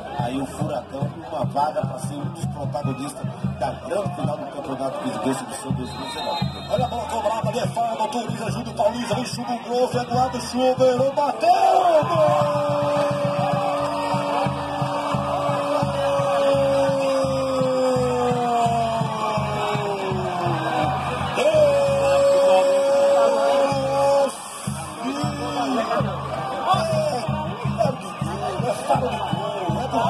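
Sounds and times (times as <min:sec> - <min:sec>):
background music with steady beat: 0:00.0 - 0:30.0
commentator's held goal shout: 0:04.0 - 0:30.0.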